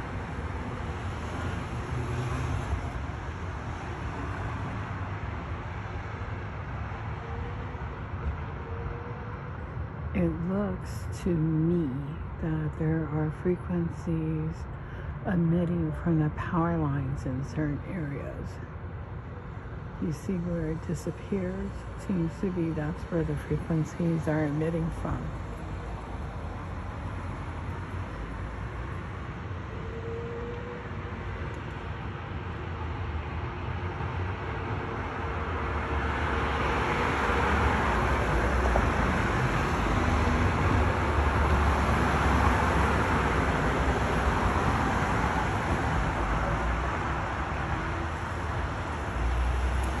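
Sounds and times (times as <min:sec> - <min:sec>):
low traffic rumble: 0:00.0 - 0:50.0.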